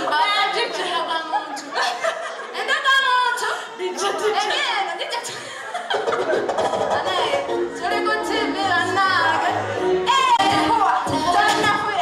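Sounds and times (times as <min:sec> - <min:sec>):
woman singing: 0:07.0 - 0:12.0.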